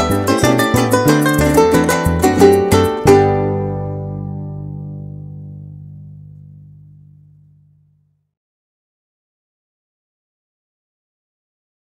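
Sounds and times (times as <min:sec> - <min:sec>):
harp and strings chord ringing: 0:00.0 - 0:08.1.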